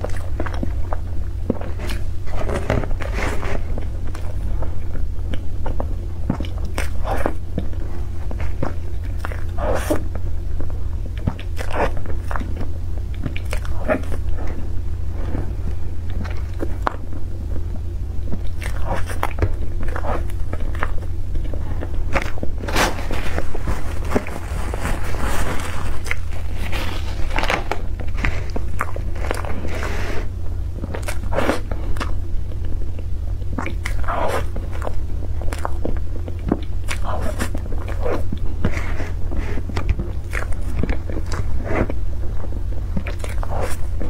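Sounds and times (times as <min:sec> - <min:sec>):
chewing sponge cake: 0:00.0 - 0:44.0
steady low hum: 0:00.0 - 0:44.0.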